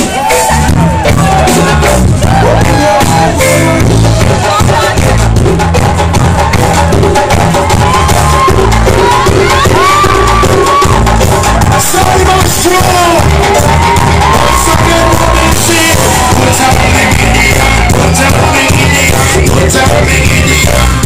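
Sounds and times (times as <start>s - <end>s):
crowd shouting: 0.0s - 5.2s, 6.1s - 21.0s
vocalist singing through pa: 0.0s - 5.6s, 11.6s - 21.0s
reggae band playing: 0.0s - 21.0s.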